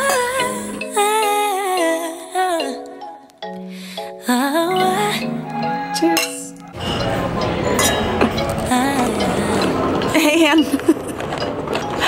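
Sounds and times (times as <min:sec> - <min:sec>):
music: 0:00.0 - 0:12.0
drinking glasses clinking: 0:05.4 - 0:12.0.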